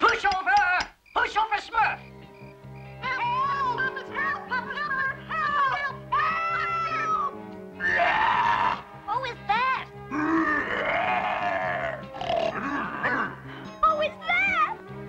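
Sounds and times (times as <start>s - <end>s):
background music: 0.0s - 15.0s
cartoon monster crying out: 7.8s - 8.9s, 10.1s - 13.4s.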